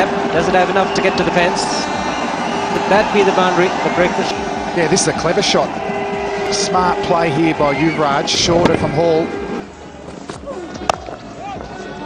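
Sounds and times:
stadium crowd: 0.0 - 12.0.

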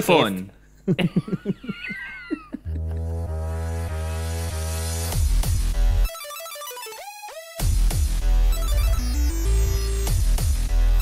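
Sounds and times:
electronic synth music with bass: 2.7 - 11.0.

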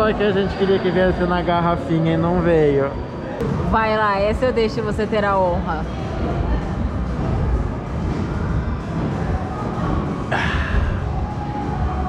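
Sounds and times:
background music: 0.0 - 12.0
busy restaurant noise: 0.0 - 12.0.

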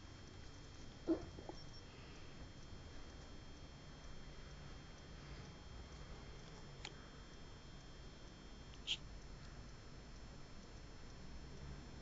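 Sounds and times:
pet animal sound: 0.9 - 2.2, 8.8 - 9.0.

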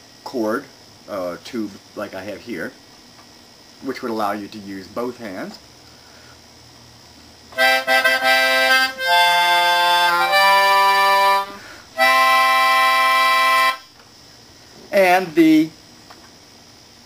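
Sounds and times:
reedy keyboard wind instrument: 7.6 - 13.9.

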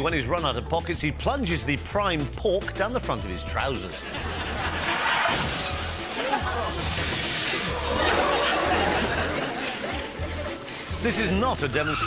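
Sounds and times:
background music with low beat: 0.0 - 4.9, 7.8 - 12.0
audience laughter: 4.0 - 5.4, 6.0 - 10.9
glass shattering: 4.9 - 9.1
car crashing through shop front: 5.0 - 6.1.

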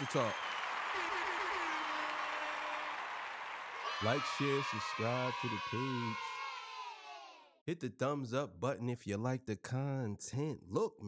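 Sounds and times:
crowd applause: 0.0 - 6.9.

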